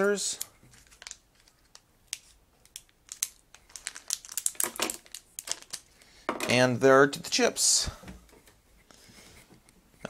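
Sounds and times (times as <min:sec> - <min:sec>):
plastic bag crinkling: 0:00.3 - 0:01.8, 0:02.7 - 0:06.0.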